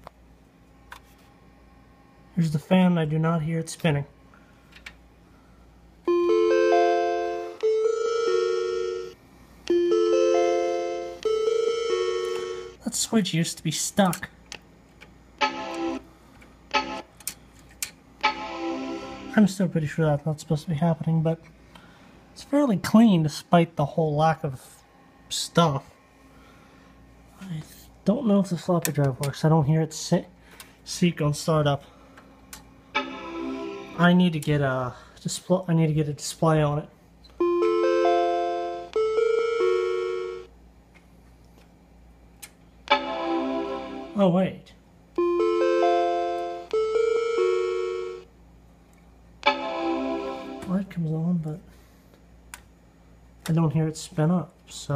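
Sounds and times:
computer error chime: 33.0s - 34.0s, 42.9s - 44.2s, 49.4s - 50.8s
computer startup chime arpeggio: 49.5s - 50.8s.

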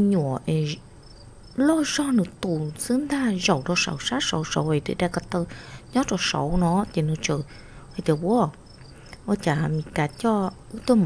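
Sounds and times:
person speaking: 0.0s - 0.8s, 1.6s - 11.0s
faint crickets chirping: 0.0s - 11.0s.

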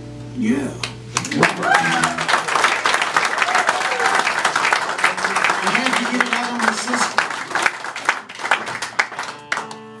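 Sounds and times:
sharp hand claps: 0.8s - 10.0s.

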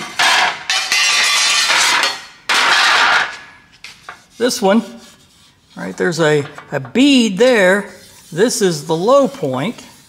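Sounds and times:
sheet metal panels scraping: 0.0s - 6.5s.

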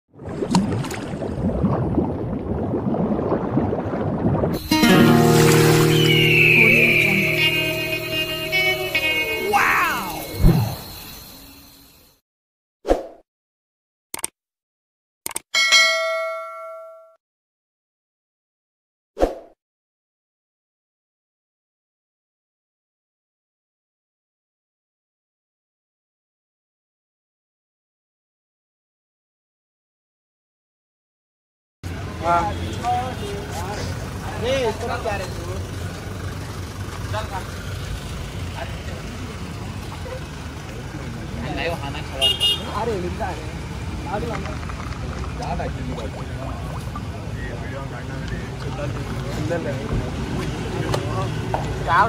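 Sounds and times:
bright bell ding: 4.6s - 7.4s, 8.5s - 12.2s, 15.6s - 17.2s
people talking: 6.1s - 10.5s, 31.9s - 35.7s, 37.1s - 37.6s, 38.5s - 52.0s
vehicle rolling past: 33.7s - 42.2s.

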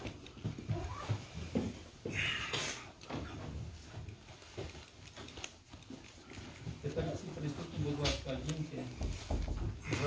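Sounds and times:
faint knocks and handling noises: 0.0s - 10.0s.

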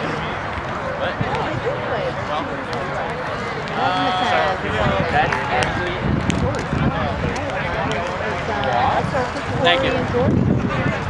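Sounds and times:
people calling out: 3.0s - 5.8s.

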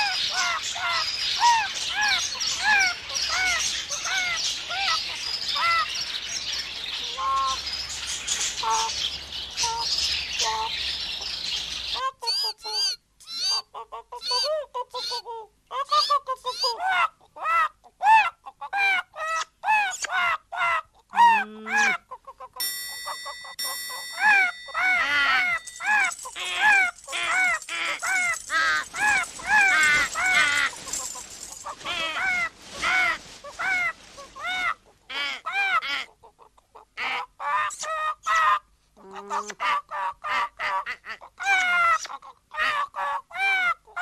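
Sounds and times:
cartoon bird squawks: 0.0s - 5.0s, 12.0s - 22.6s, 24.0s - 36.2s, 36.9s - 38.6s, 39.2s - 44.0s.

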